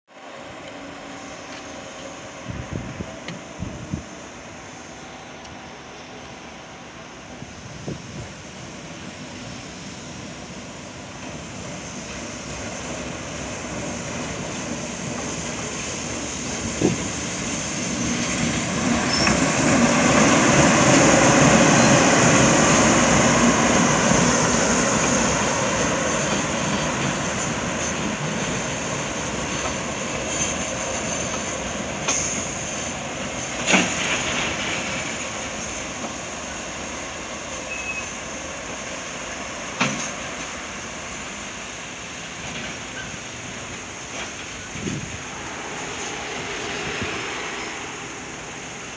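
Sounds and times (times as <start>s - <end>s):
train wheels rumbling on rail: 0.2s - 48.9s.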